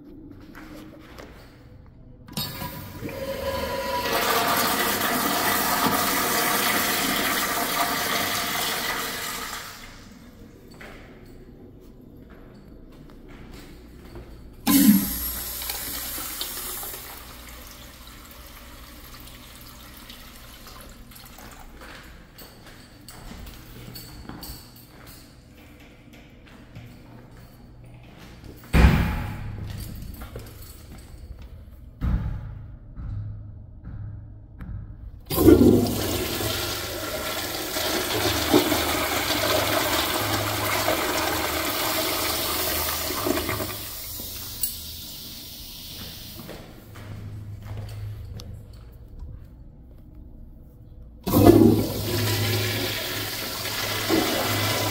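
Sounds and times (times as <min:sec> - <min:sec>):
urinal flushing: 0:02.3 - 0:10.3, 0:14.7 - 0:21.9, 0:35.3 - 0:47.0, 0:51.2 - 0:54.9.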